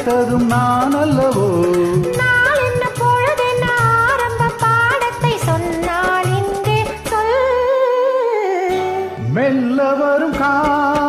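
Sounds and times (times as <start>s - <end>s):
karaoke backing track: 0.0s - 11.0s
person singing with vibrato: 0.0s - 11.0s.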